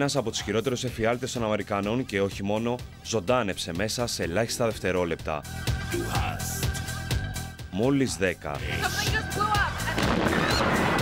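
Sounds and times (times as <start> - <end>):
news background music: 0.0 - 11.0
people crying out and screaming: 8.7 - 11.0
bomb blast: 10.0 - 11.0.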